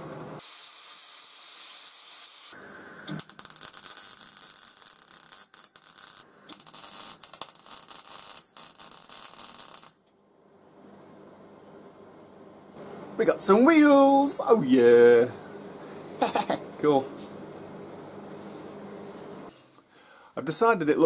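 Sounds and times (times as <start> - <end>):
welder crackling and sizzling: 0.4 - 10.0.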